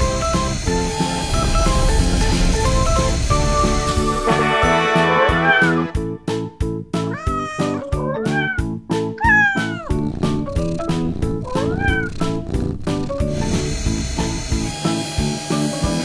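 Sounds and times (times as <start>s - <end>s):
upbeat background music: 0.0s - 16.0s
cat meowing: 5.3s - 6.0s, 7.0s - 13.2s.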